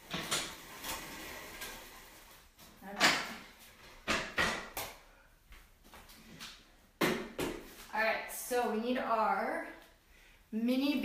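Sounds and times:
weight bench scraping on floor: 0.0 - 3.3.

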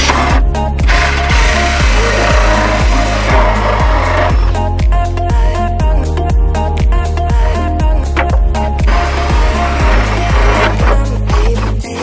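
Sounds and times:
cordless drill cutting plastic: 0.0 - 4.6, 8.8 - 11.1
music with steady kick drum: 0.0 - 12.0.

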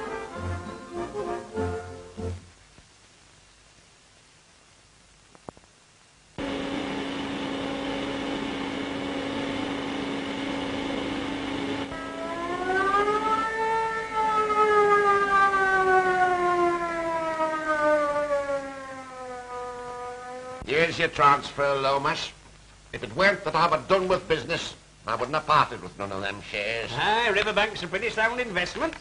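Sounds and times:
steam hooter steady note: 0.0 - 2.5, 6.4 - 18.4
louder steam hooter rising pitch: 6.4 - 14.3.

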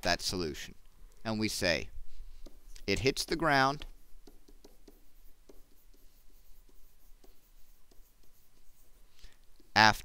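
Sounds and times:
stylus scratching on screen: 2.2 - 10.0
stylus tapping: 2.3 - 9.8.

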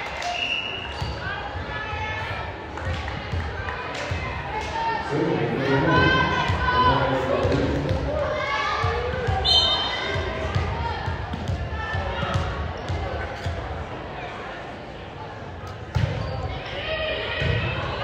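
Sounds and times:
people calling and chatting: 0.0 - 18.0.

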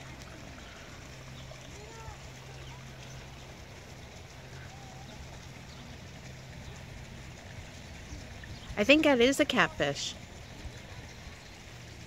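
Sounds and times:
faint distant voices: 0.0 - 12.0
steady low hum: 0.0 - 12.0.

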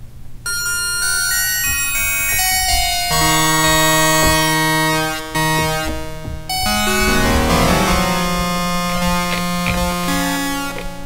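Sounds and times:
synthesizer held chord: 6.7 - 9.3.

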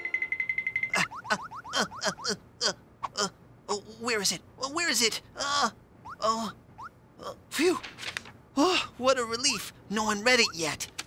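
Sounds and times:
fast-pulsing high beep: 0.0 - 2.1
short sweeping blips: 0.8 - 2.3.

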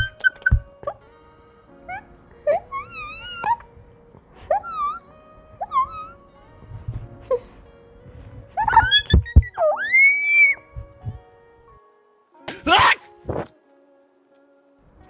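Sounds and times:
quiet background music: 0.0 - 15.0
thumps: 8.1 - 9.7, 10.6 - 11.3
cartoon bird squawks and chirps: 8.6 - 10.6.

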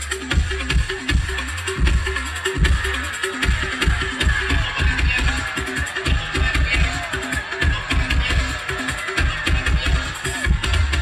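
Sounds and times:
dance music with heavy bass: 0.0 - 11.0.

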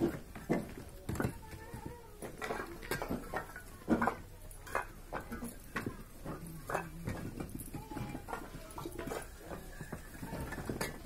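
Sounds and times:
bricks clinking together: 0.0 - 11.0.

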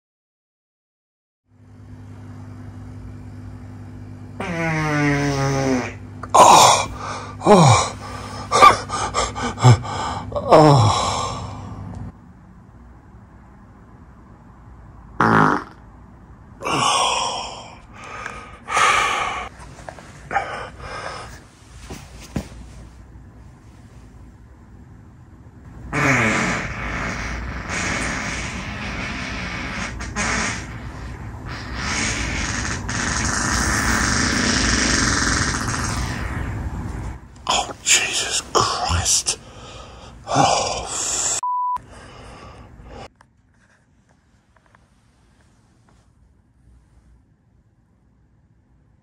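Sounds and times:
air conditioning hum: 1.5 - 49.0
human fart: 4.4 - 6.6, 15.2 - 15.8, 25.9 - 36.4
airy rush: 29.9 - 41.4.

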